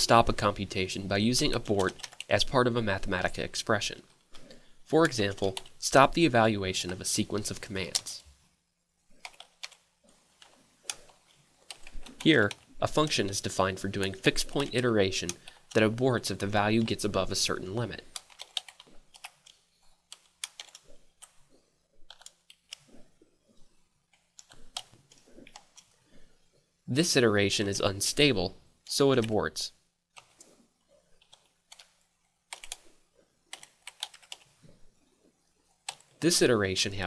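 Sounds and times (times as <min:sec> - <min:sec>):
computer keyboard typing: 0:01.4 - 0:02.5, 0:04.4 - 0:05.8, 0:06.8 - 0:08.2, 0:09.2 - 0:09.8, 0:10.4 - 0:13.1, 0:14.0 - 0:17.4, 0:18.0 - 0:21.4, 0:22.1 - 0:23.0, 0:24.4 - 0:25.9, 0:31.2 - 0:32.9, 0:33.5 - 0:34.5, 0:35.8 - 0:36.2
keyboard typing clicks: 0:32.5 - 0:32.8.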